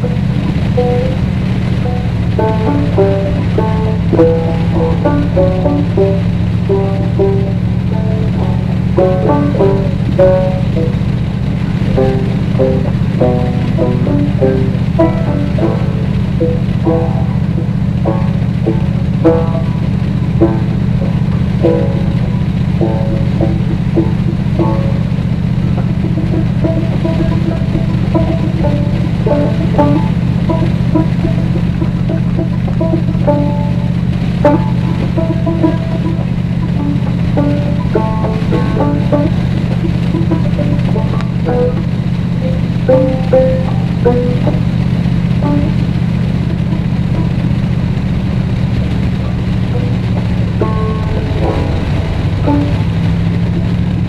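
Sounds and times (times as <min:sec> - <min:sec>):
car driving drone: 0:00.0 - 0:54.0
melodic background music: 0:11.8 - 0:47.6.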